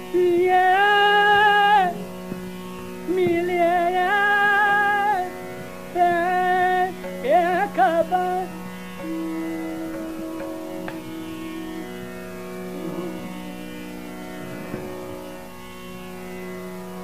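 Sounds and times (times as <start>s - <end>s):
tanpura drone: 0.0s - 17.0s
faint melodic touches: 6.0s - 16.1s
held accompanying note: 6.1s - 15.6s.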